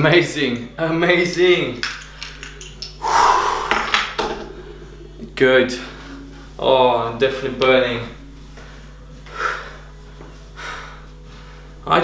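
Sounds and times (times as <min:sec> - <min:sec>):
man exhaling heavily: 0:03.0 - 0:04.0.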